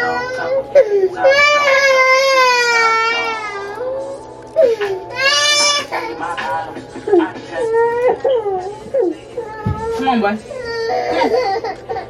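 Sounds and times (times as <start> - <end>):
toddler crying: 0.0 - 6.2, 7.6 - 12.0.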